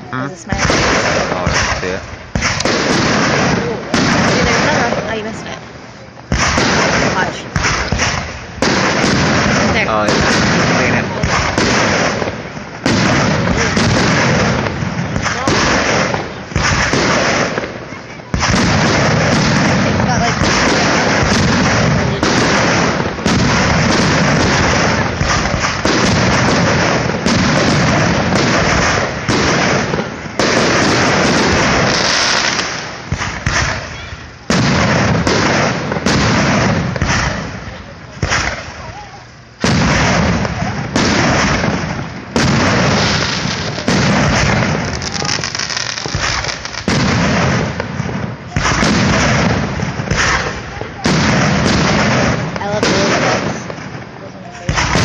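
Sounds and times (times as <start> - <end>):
fireworks shells bursting: 0.4 - 55.0.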